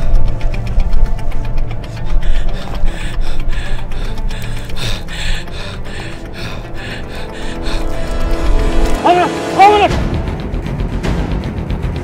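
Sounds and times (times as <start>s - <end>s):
scratchy mechanical rhythmic texture: 0.0s - 9.0s
steady low bass: 0.0s - 12.0s.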